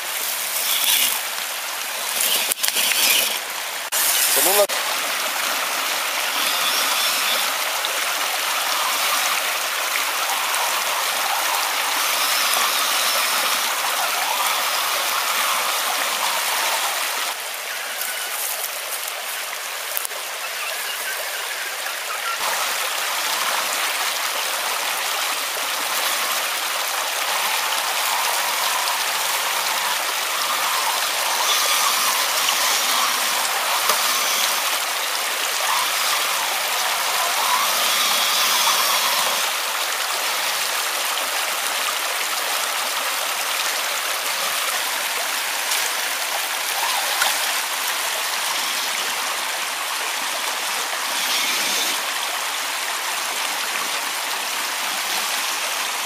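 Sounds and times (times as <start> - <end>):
stream rushing over stones: 0.0 - 56.0
toy car tyres churning water: 0.0 - 56.0.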